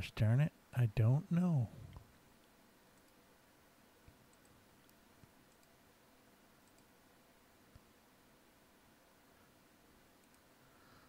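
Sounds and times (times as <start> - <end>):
faint clicks: 1.9 - 3.2, 4.0 - 5.8, 6.6 - 7.0, 10.2 - 10.6.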